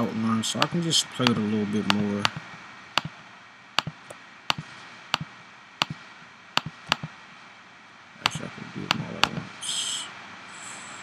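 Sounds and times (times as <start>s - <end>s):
computer mouse clicks: 3.8s - 4.6s, 5.2s - 6.0s, 6.6s - 7.1s.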